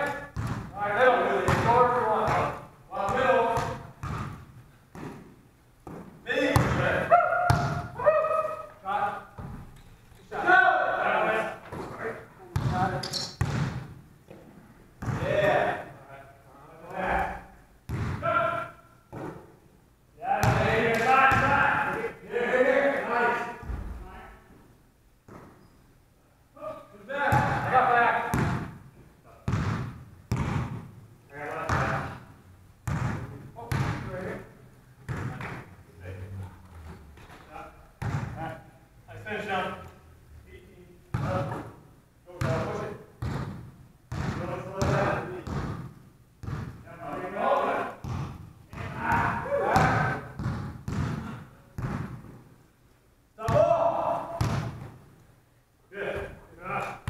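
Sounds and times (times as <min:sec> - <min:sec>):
basketball bouncing on hardwood: 0:00.4 - 0:00.7, 0:03.1 - 0:06.9, 0:07.5 - 0:07.9, 0:12.6 - 0:14.0, 0:17.9 - 0:18.2, 0:28.3 - 0:28.8, 0:29.5 - 0:30.9, 0:32.8 - 0:34.1, 0:38.0 - 0:38.4, 0:42.4 - 0:46.8, 0:48.0 - 0:52.4, 0:54.4 - 0:54.9
players calling out: 0:06.3 - 0:09.4, 0:48.7 - 0:50.4, 0:53.4 - 0:54.8.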